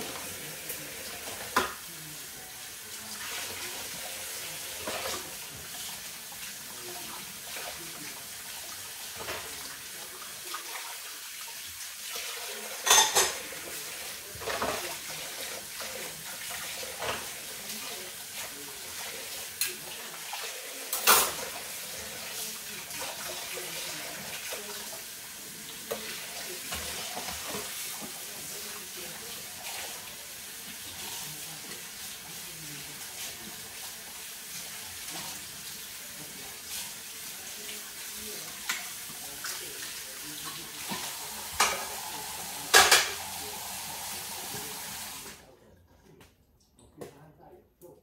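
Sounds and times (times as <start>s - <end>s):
faucet running into sink: 0.0s - 45.4s
dishes clinking and knocking: 1.2s - 1.8s, 12.8s - 13.7s, 14.3s - 15.1s, 40.8s - 42.0s, 42.6s - 43.5s
sharp clatter of dishes: 12.8s - 13.5s, 14.4s - 14.9s, 20.9s - 21.5s, 40.9s - 41.9s, 42.7s - 43.3s.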